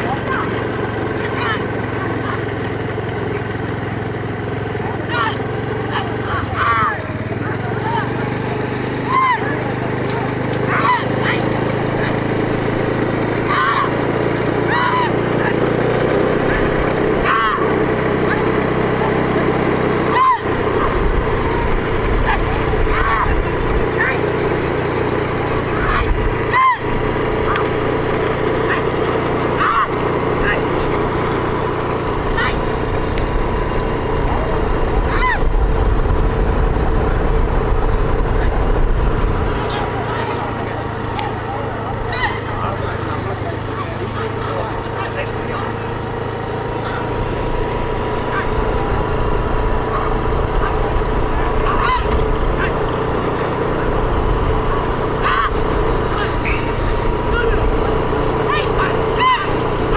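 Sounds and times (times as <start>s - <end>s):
people shouting: 0.0s - 3.5s, 4.5s - 35.6s, 39.5s - 59.9s
carts and hooves rattling: 0.0s - 59.9s
motor vehicle engine: 0.0s - 59.9s.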